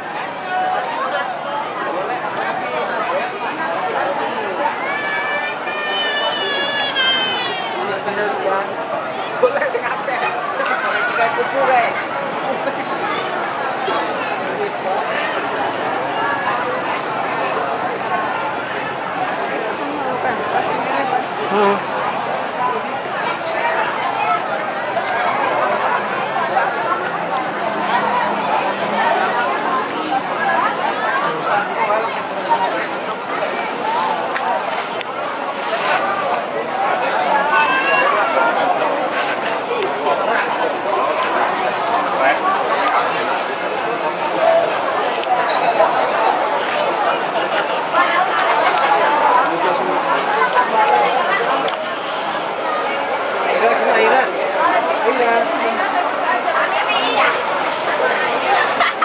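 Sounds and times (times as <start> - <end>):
crowd chatter: 0.0 - 59.0.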